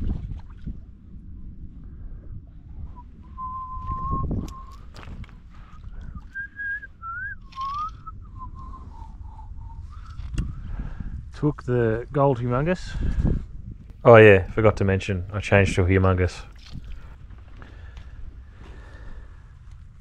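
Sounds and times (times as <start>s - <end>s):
wind rumble on microphone: 0.0s - 20.0s
person whistling a tune: 3.3s - 4.8s, 6.1s - 10.2s.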